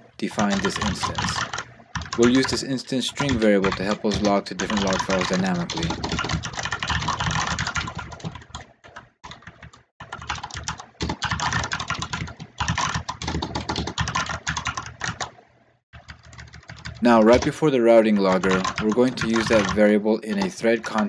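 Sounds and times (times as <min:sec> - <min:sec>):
rapid typing on computer keyboard: 0:00.2 - 0:15.4, 0:16.0 - 0:21.0.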